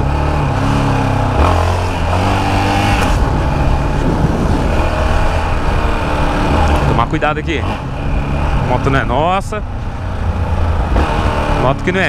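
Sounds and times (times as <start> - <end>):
motorcycle engine riding: 0.0 - 12.0.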